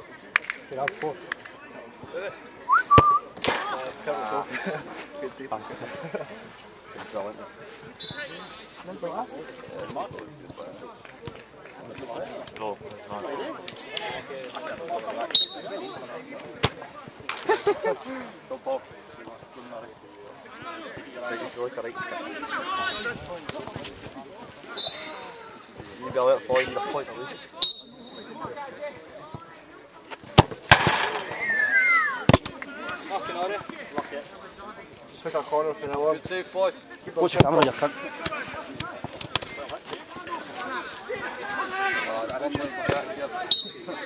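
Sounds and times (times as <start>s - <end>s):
players talking: 0.0s - 44.0s
falling whistle-like tones: 2.7s - 3.3s.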